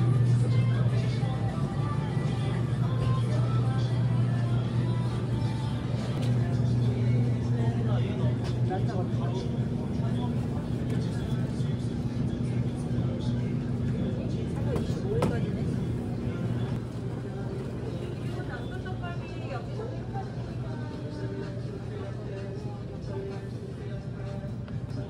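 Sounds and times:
steady low hum: 0.0 - 25.0
store music: 0.0 - 25.0.

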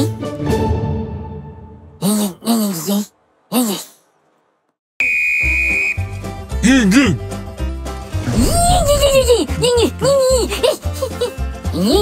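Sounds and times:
long whistle blast: 5.0 - 6.2.

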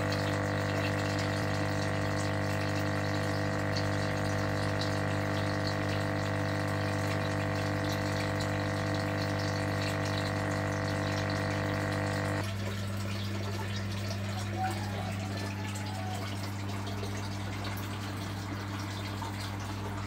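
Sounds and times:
aquarium pump humming: 0.0 - 20.0
moving water: 0.0 - 20.0.

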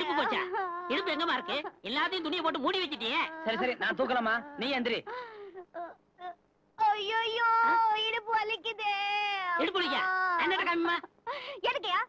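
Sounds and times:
woman crying in pain: 0.0 - 1.8, 3.0 - 6.4, 9.4 - 11.6.

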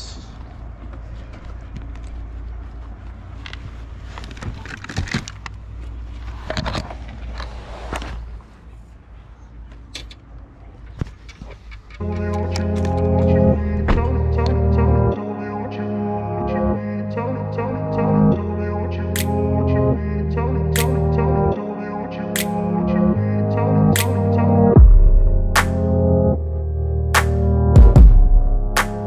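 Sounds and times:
steady low rumble: 8.2 - 29.0
car door opening: 10.9 - 14.4
background music: 12.0 - 29.0.

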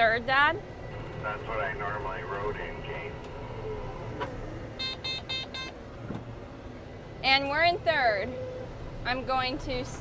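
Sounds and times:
short electronic beeps: 4.8 - 5.7.

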